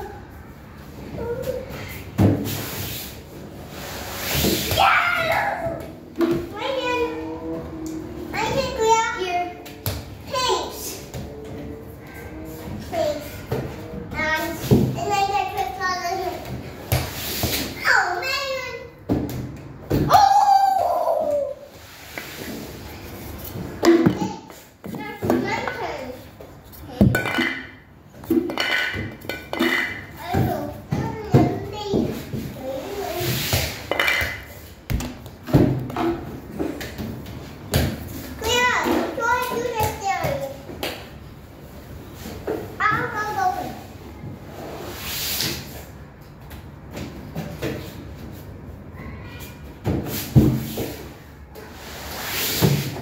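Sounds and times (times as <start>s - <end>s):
children chattering and calling out: 4.9s - 9.6s, 48.9s - 49.7s.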